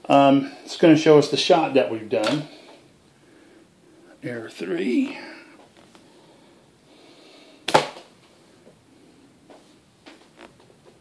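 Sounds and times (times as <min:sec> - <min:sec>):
rubber band snap: 0:07.6 - 0:08.1.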